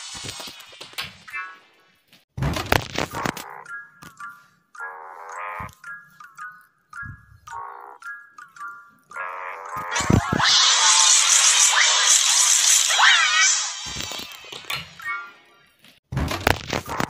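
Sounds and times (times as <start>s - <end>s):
dense burst with pitch sweeps: 10.0s - 14.7s.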